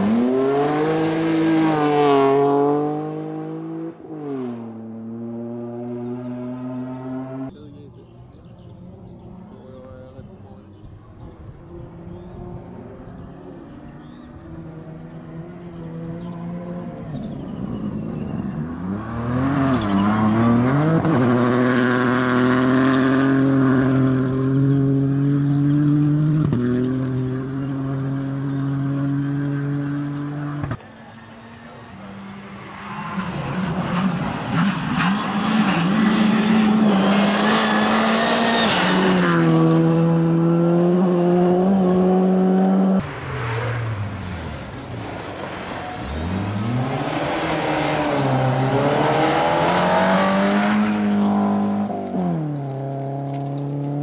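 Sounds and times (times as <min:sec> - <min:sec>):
rally car engines at high revs: 0:00.0 - 0:54.0
gravel spraying from tyres: 0:30.8 - 0:35.7, 0:38.6 - 0:41.2.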